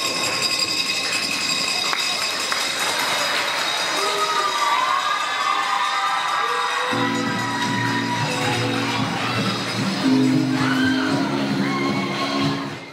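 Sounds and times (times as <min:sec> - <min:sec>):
audience cheering and applauding: 0:01.8 - 0:12.9
whoops and shouts: 0:04.0 - 0:09.5, 0:10.4 - 0:12.6
recorded music: 0:06.9 - 0:12.9.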